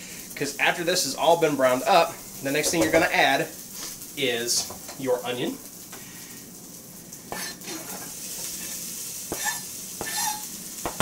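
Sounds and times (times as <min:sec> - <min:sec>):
sausage sizzling in pot: 0:00.0 - 0:11.0
onion scraped off cutting board: 0:07.3 - 0:11.0.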